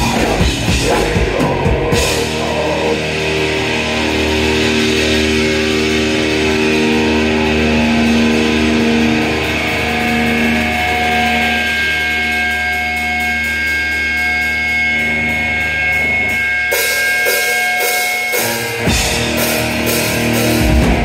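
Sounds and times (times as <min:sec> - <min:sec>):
electric guitar chord ringing: 0:00.0 - 0:21.0.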